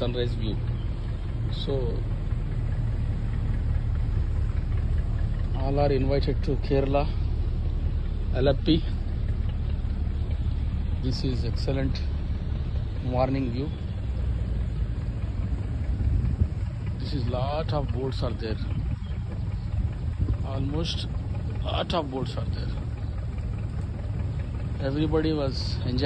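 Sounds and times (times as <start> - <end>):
boat engine rumbling: 0.0 - 26.0.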